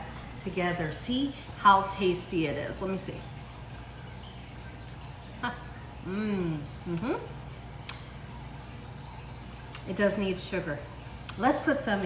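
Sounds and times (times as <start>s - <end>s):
low room hum: 0.0s - 12.0s
woman humming mm-hmm: 6.1s - 7.3s.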